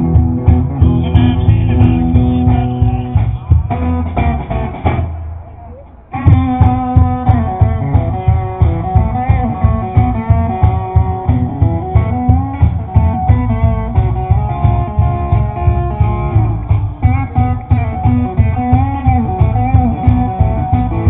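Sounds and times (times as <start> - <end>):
live band playing: 0.0 - 21.0.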